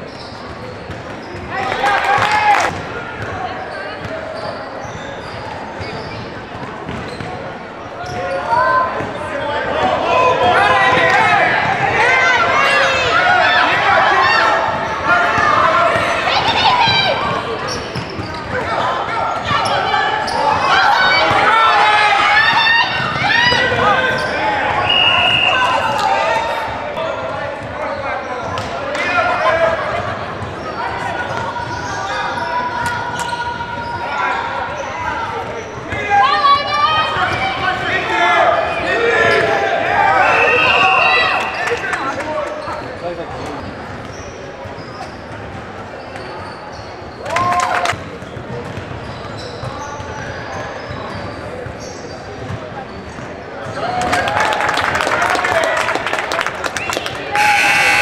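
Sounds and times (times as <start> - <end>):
spectators shouting and cheering: 1.1 - 43.6, 46.4 - 48.6, 53.4 - 58.0
referee whistle blasts: 24.8 - 26.0, 40.2 - 41.7, 57.3 - 58.0.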